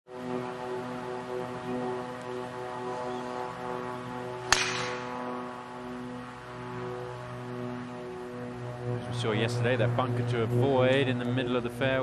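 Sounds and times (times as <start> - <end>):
background music chords: 0.1 - 12.0
golf driver striking ball: 4.5 - 5.3.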